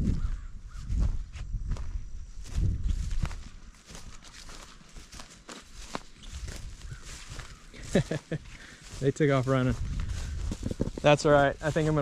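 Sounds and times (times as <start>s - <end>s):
footsteps through grass: 0.0s - 12.0s.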